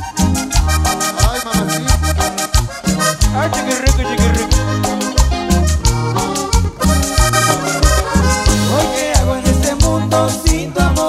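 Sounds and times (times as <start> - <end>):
live band instrumental: 0.0 - 11.0.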